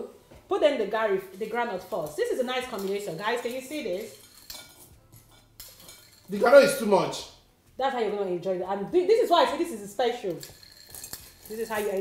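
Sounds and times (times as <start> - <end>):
spoon clinking against dish: 2.6 - 6.5, 10.3 - 12.0.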